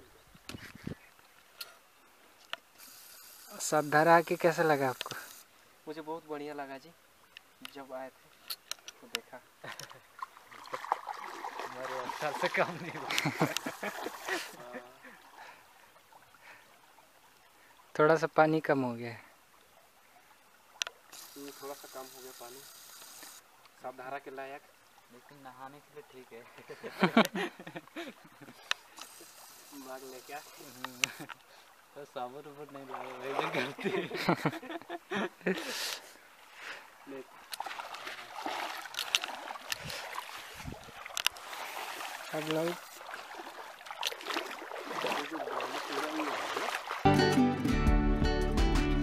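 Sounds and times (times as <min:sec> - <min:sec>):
steady high hiss: 0:00.0 - 0:09.6, 0:12.5 - 0:15.1, 0:21.0 - 0:32.7
flowing river water: 0:00.0 - 0:47.1
water sloshing and splashing: 0:09.7 - 0:18.0, 0:24.6 - 0:35.1, 0:36.2 - 0:47.1.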